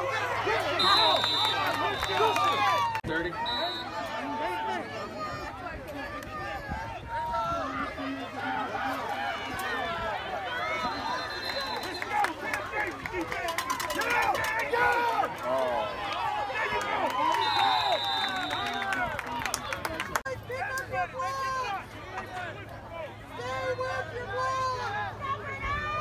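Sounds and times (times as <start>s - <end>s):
crowd shouting and chattering: 0.0s - 26.0s.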